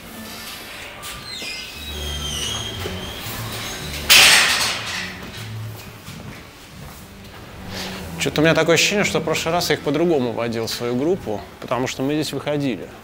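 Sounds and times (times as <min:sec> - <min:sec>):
metal gate hinges squealing: 0:00.2 - 0:05.7
metal gate banging shut: 0:01.9 - 0:05.6.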